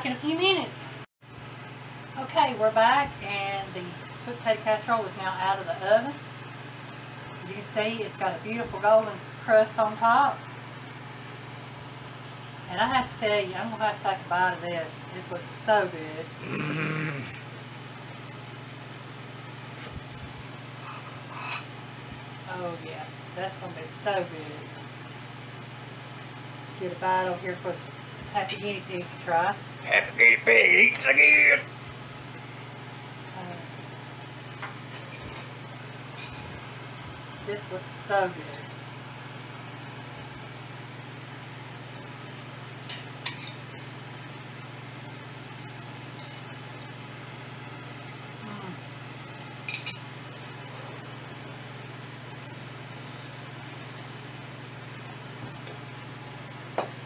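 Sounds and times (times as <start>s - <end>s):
kitchen room hum: 0.0s - 57.0s.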